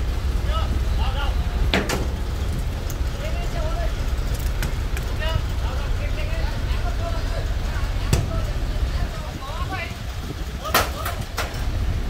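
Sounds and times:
truck engine rumbling: 0:00.0 - 0:12.0
faint voices: 0:02.4 - 0:11.5.

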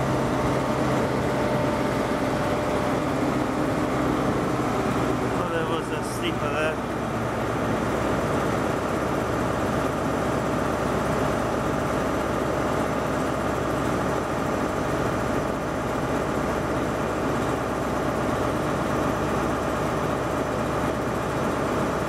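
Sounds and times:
train engine idling: 0:00.0 - 0:13.3.

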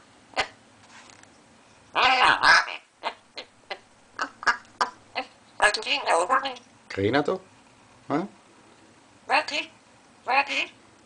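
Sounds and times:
parrot call: 0:01.9 - 0:06.6, 0:09.3 - 0:10.8.

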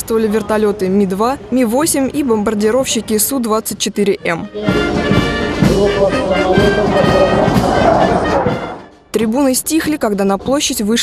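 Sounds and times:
brass band music: 0:04.1 - 0:09.5.

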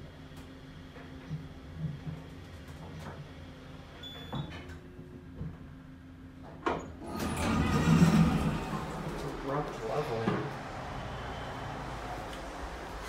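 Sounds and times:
elevator doors sliding open: 0:06.8 - 0:13.0
elevator humming: 0:07.0 - 0:13.0.

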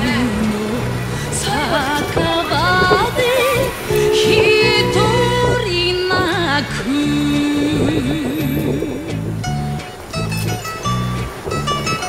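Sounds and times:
song accompaniment: 0:00.0 - 0:12.0.

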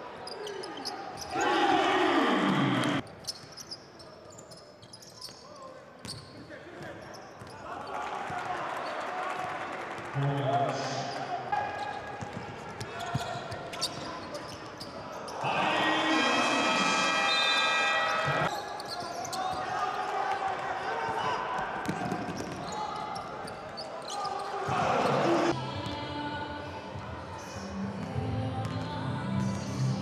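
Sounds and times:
voices echoing in hall: 0:00.0 - 0:03.0, 0:05.2 - 0:28.1
basketball bouncing on court: 0:12.2 - 0:13.3, 0:21.8 - 0:22.7.

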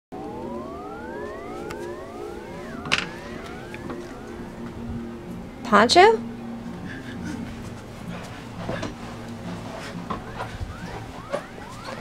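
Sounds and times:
overlapping rising tones: 0:00.1 - 0:12.0.

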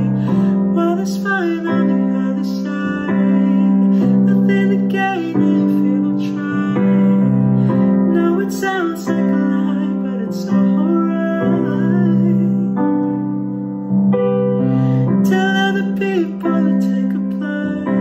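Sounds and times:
man singing ballad: 0:00.0 - 0:13.6, 0:14.8 - 0:18.0
piano chords: 0:00.0 - 0:18.0.

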